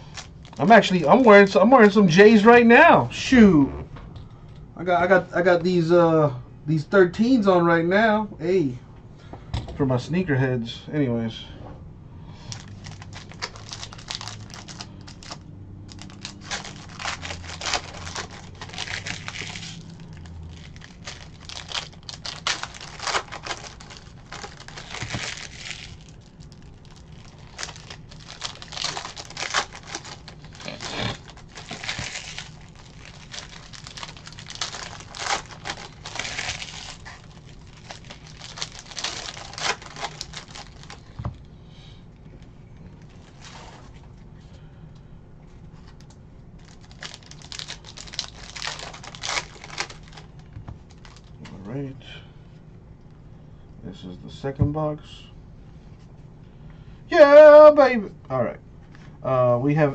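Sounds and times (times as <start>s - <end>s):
foil wrappers crinkling and tearing: 0.0s - 2.5s, 12.5s - 41.2s, 43.0s - 43.9s, 45.8s - 51.4s.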